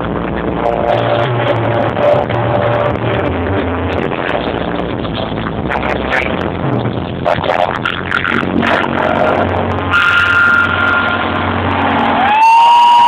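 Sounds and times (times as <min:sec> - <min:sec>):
live band playing: 0:07.2 - 0:12.4
steady electronic beep tone: 0:08.4 - 0:12.3.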